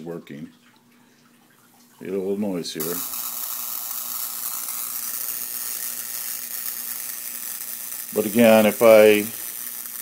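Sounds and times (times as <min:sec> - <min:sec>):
electric spark buzzing crackle: 0:02.8 - 0:10.0.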